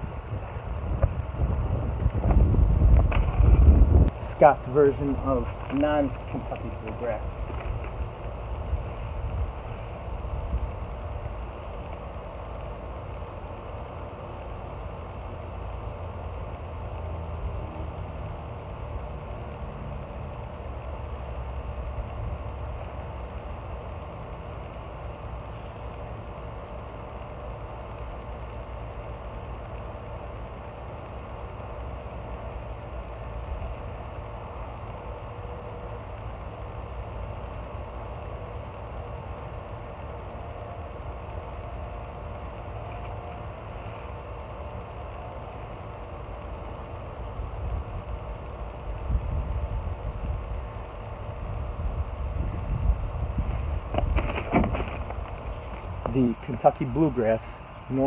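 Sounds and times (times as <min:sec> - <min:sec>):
steady mechanical hum: 0:00.0 - 0:58.0.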